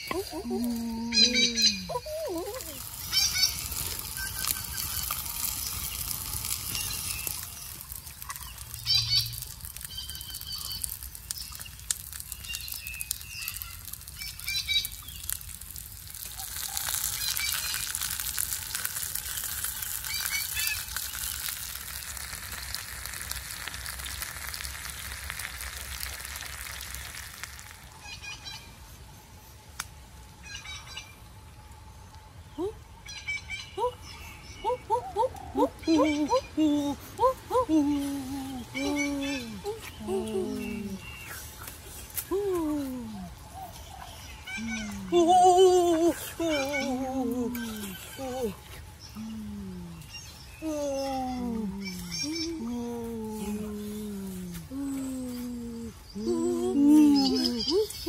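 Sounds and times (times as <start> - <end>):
wood fire crackling: 0.0 - 28.2, 36.8 - 50.6
fish sizzling on a grill: 0.4 - 28.2
high bird chirps: 2.8 - 15.4.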